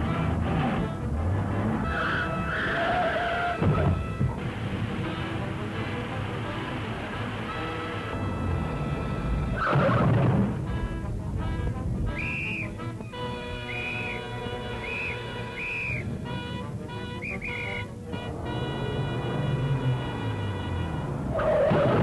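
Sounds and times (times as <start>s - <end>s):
background music with held chords: 0.0s - 2.6s, 3.6s - 21.3s
police whistle blasts: 12.1s - 12.8s, 13.6s - 16.1s, 17.0s - 17.9s.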